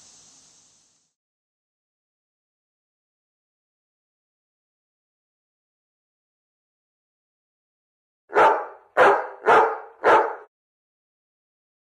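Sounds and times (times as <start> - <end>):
dog barking: 8.3 - 10.5.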